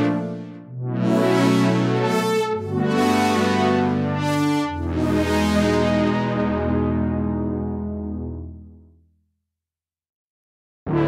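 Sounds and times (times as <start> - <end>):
synthesizer pad chords: 0.0 - 8.9.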